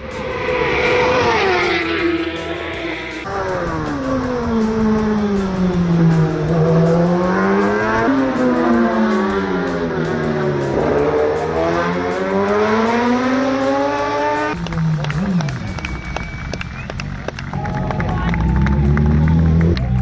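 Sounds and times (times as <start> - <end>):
racing motorcycle engines: 0.0 - 20.0.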